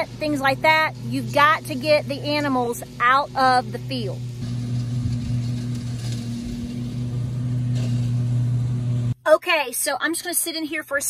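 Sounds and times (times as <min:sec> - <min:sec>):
riding lawn mower engine: 0:00.0 - 0:09.2.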